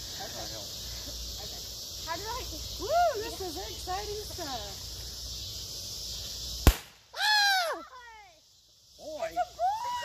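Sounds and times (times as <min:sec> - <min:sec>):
confetti cannon pop: 0:06.6 - 0:07.0.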